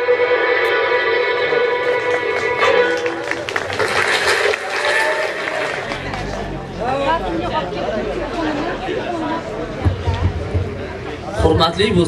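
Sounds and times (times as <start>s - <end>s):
chatter: 0.4s - 12.0s
audience applauding: 1.8s - 6.8s.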